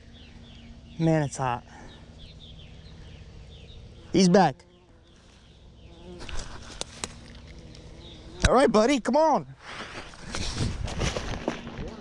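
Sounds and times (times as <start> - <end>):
bee buzzing: 0.0 - 8.9, 9.6 - 12.0
rustling through tall weeds: 5.0 - 8.4, 9.6 - 12.0.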